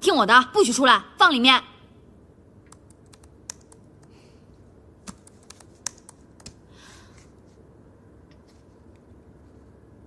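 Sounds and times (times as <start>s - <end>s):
laptop keyboard keystrokes: 2.7s - 4.2s, 5.0s - 6.6s.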